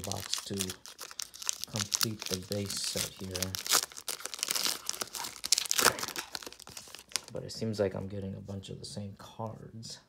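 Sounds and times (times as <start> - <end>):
foil wrapper crinkling: 0.0 - 7.4.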